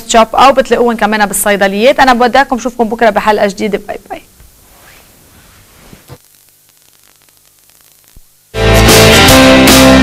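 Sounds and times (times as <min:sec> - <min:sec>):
faint hiss and electrical hum: 0:00.0 - 0:08.6.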